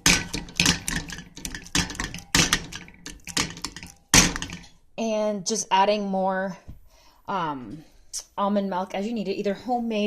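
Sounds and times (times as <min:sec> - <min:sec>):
potato masher knocking steel pan: 0:00.0 - 0:04.7.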